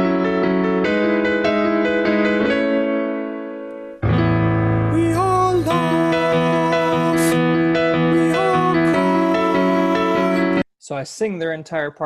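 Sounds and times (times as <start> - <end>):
piano chords: 0.0 - 10.7
man singing: 4.9 - 10.6.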